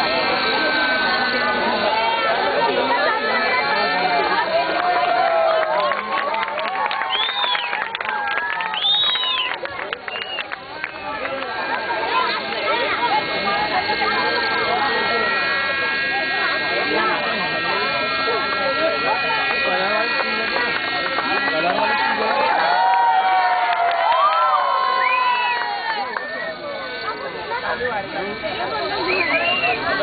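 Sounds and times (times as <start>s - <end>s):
rc helicopter engine whine: 0.0s - 30.0s
spectators talking: 0.0s - 30.0s.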